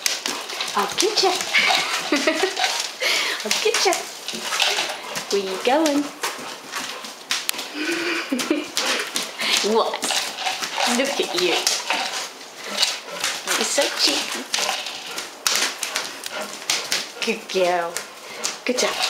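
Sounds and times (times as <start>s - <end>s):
dog chewing tube toy: 0.0s - 19.0s
woman talking to dog: 0.7s - 1.7s, 3.4s - 4.1s, 5.2s - 6.2s, 9.6s - 10.2s, 10.8s - 11.7s, 13.5s - 14.4s, 17.2s - 18.0s, 18.6s - 19.0s.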